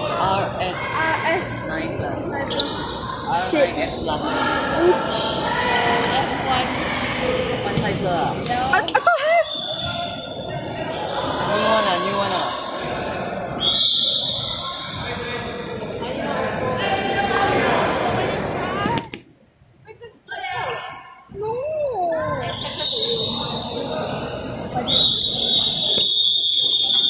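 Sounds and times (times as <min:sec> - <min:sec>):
referee's whistle blast: 0:13.6 - 0:15.0, 0:24.9 - 0:27.0.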